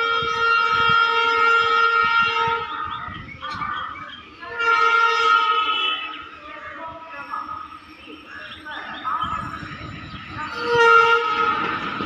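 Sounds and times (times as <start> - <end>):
train horn blasts: 0.0 - 2.9, 4.5 - 6.3, 10.5 - 12.0.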